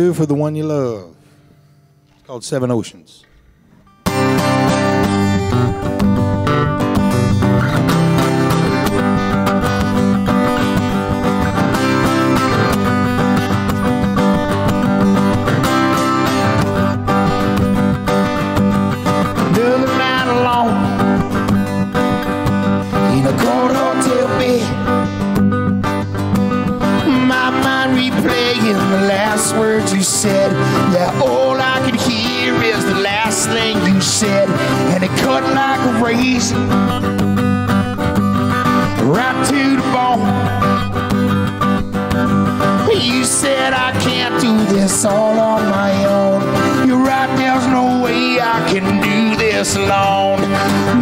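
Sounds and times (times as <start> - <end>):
acoustic guitar strumming: 0.0 - 51.0
electric guitar sliding melody: 3.4 - 51.0.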